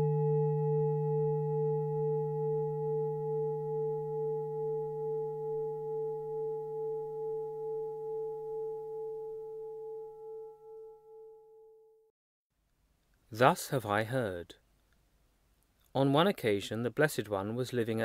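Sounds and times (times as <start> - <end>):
singing bowl ringing: 0.0 - 12.1.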